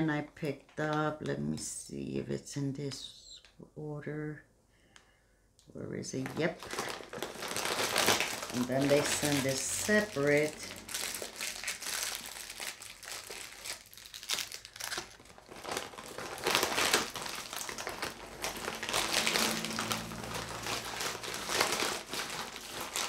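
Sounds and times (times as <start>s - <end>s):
packaging crinkling and rustling: 6.2s - 23.0s.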